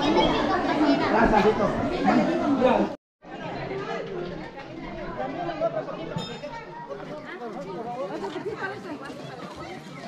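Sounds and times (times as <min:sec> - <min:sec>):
crowd chatting: 0:00.0 - 0:10.0.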